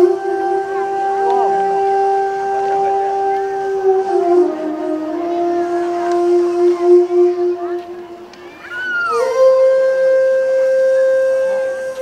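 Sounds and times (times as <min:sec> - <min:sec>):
wind instrument long note: 0:00.0 - 0:12.0.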